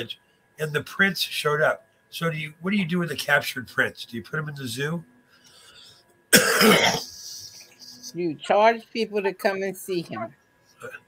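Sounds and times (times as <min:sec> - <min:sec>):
person coughing: 0:06.4 - 0:07.6.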